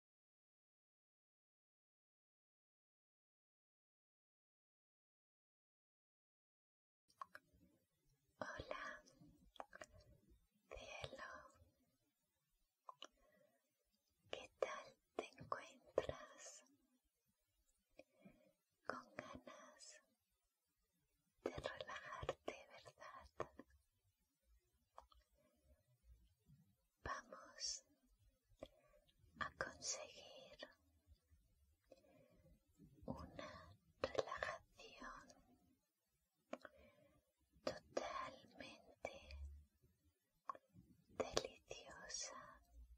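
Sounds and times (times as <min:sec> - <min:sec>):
woman whispering: 0:08.4 - 0:11.6, 0:14.3 - 0:16.8, 0:18.8 - 0:20.1, 0:21.4 - 0:23.7, 0:27.0 - 0:28.0, 0:28.6 - 0:30.9, 0:33.0 - 0:35.5, 0:37.6 - 0:39.5, 0:41.2 - 0:42.9.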